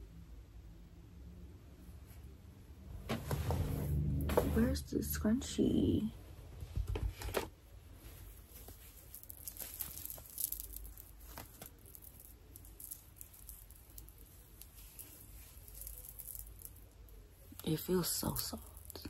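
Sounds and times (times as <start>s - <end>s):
low room hum: 0.0s - 19.0s
hands rustling hair: 7.9s - 19.0s.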